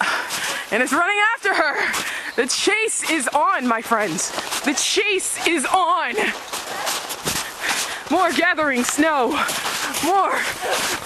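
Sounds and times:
running footsteps in snow: 0:00.0 - 0:11.0.

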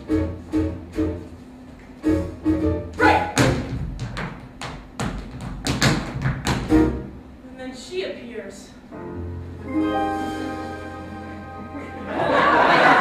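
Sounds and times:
tap shoes striking stage floor: 0:01.7 - 0:06.9.

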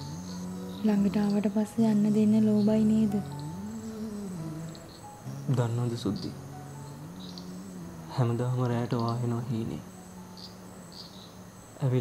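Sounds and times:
person singing wordless vocals: 0:00.0 - 0:10.3.

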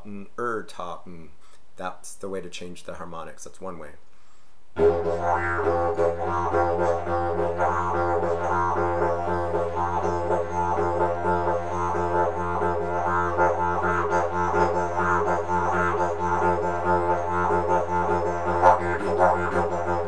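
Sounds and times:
didgeridoo drone: 0:04.8 - 0:20.0.

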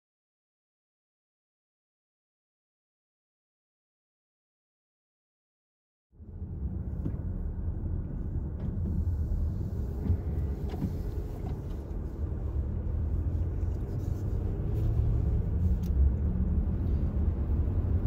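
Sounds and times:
road and tire noise: 0:06.1 - 0:18.0.

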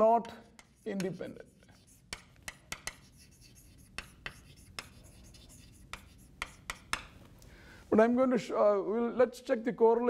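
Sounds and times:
chalk tapping on blackboard: 0:00.0 - 0:07.3.

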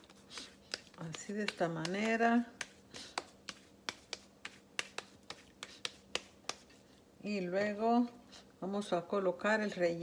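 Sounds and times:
hands slapping mashed potato: 0:00.0 - 0:08.2.

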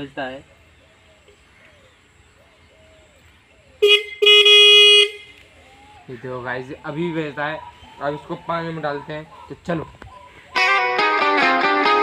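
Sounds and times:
small electric horn blasts: 0:03.8 - 0:05.4.

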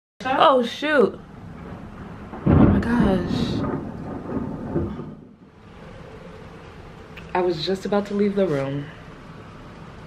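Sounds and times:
faint steady background noise: 0:00.2 - 0:10.0
rolling thunder: 0:01.2 - 0:07.7.

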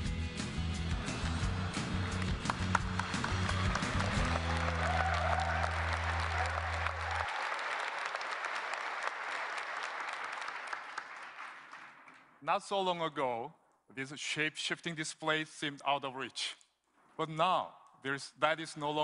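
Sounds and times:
audience applauding: 0:00.9 - 0:12.4.

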